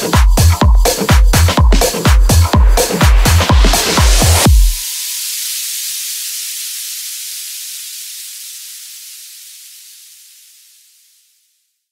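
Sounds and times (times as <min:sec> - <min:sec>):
white noise hiss: 0:04.6 - 0:11.7.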